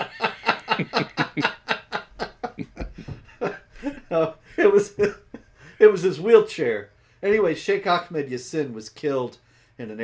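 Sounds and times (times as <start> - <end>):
men laughing: 0.0 - 6.0.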